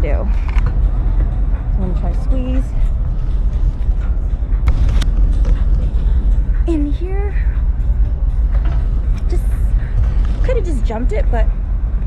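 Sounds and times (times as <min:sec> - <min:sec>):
low wind rumble: 0:00.0 - 0:12.0.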